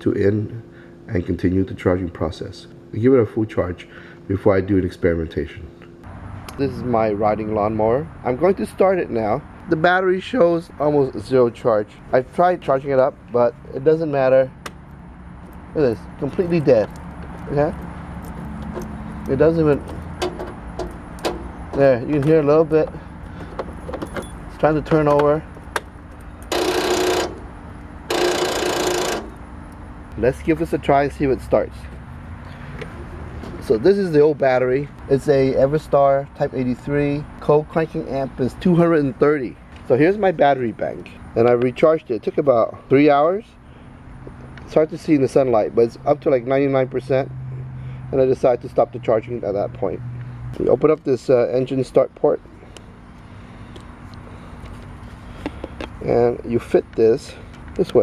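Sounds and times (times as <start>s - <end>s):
low outdoor background hum: 0.0s - 58.0s
electric starter buzzing: 23.1s - 30.7s.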